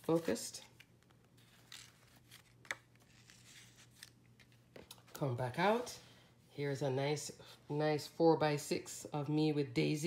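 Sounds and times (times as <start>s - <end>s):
paper rustling: 0.0s - 4.9s
pages turning: 0.0s - 5.9s.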